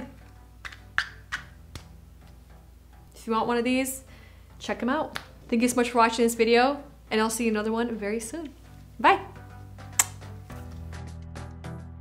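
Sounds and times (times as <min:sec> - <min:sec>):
faint background music: 0:00.0 - 0:11.8.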